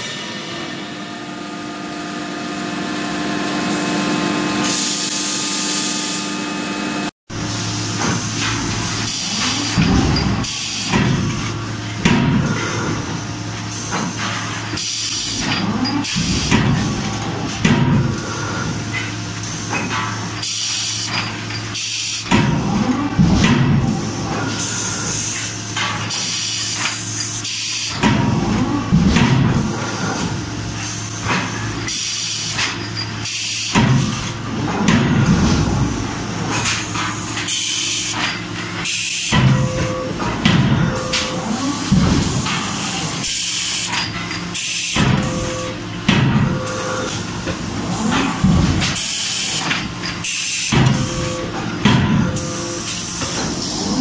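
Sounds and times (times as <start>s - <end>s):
steady machine hum: 0.0s - 54.0s.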